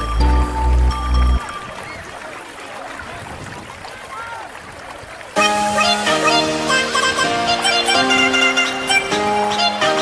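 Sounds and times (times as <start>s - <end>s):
background music: 0.0s - 1.7s, 5.4s - 10.0s
swimmers splashing: 1.4s - 5.9s.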